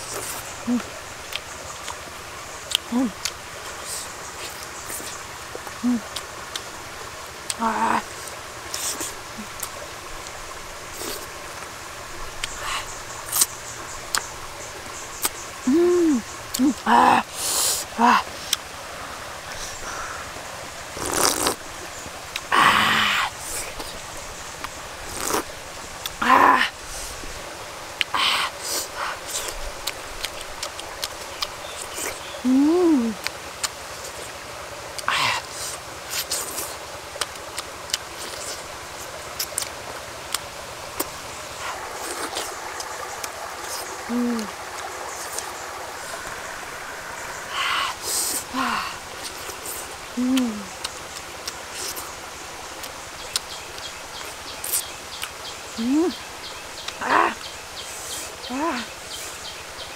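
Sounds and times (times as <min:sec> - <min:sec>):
woman humming mmm: 0:00.6 - 0:00.9, 0:02.8 - 0:03.3, 0:05.7 - 0:06.2, 0:15.6 - 0:18.3, 0:32.4 - 0:33.3, 0:44.0 - 0:44.6, 0:47.5 - 0:49.0, 0:50.1 - 0:50.8, 0:55.8 - 0:56.2
broth slurping: 0:02.7 - 0:32.4, 0:33.0 - 0:55.4
chewing and sucking smacks: 0:08.7 - 0:11.3, 0:12.4 - 0:14.3, 0:20.9 - 0:21.6, 0:24.6 - 0:26.2, 0:28.7 - 0:32.2, 0:35.0 - 0:38.6, 0:41.0 - 0:47.2, 0:49.2 - 0:52.1.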